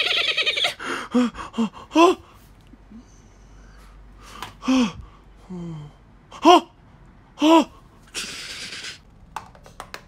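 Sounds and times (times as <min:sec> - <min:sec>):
person gasping: 0:00.8 - 0:06.7
person grunting: 0:04.6 - 0:06.8, 0:07.4 - 0:07.8.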